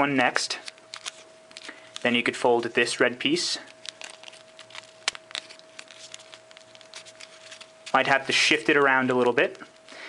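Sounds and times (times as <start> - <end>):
faint steady hum: 0.0 - 10.0
paper rustling and crackling: 0.6 - 8.7.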